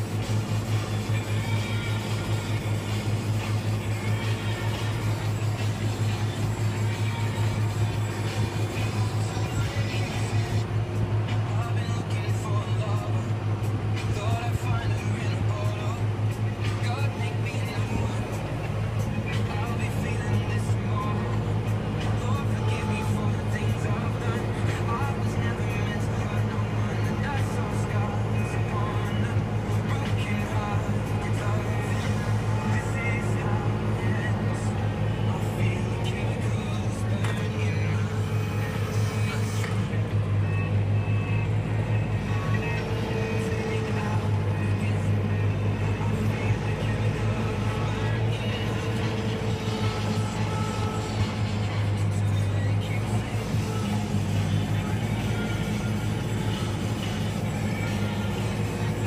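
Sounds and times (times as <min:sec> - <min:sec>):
music: 0:00.0 - 0:59.0
tractor diesel engine droning: 0:00.0 - 0:59.0.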